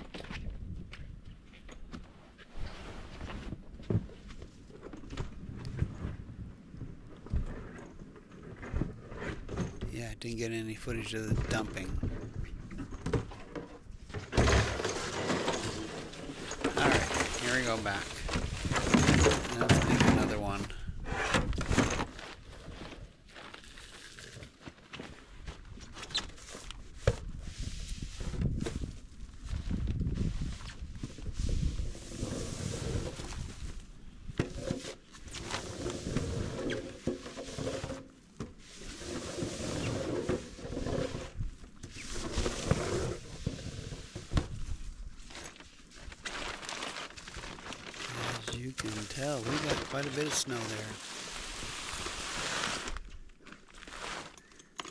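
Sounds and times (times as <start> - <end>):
people talking: 9.9 - 12.0, 16.8 - 18.2, 19.5 - 20.8, 48.1 - 51.0
plastic tarp rustling: 14.4 - 20.6, 34.6 - 38.0, 38.6 - 54.6
snow shovels scraping: 14.6 - 20.6, 38.6 - 44.2, 48.0 - 53.0, 53.8 - 54.5.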